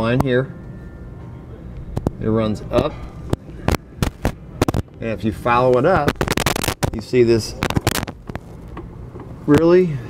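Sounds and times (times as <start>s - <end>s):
low steady hum: 0.0s - 10.0s
sharp irregular clicks and pops: 6.0s - 7.0s, 7.6s - 8.9s.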